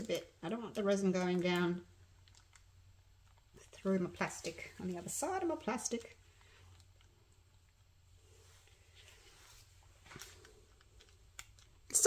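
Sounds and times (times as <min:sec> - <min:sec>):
soft handling rustles: 0:05.9 - 0:11.4.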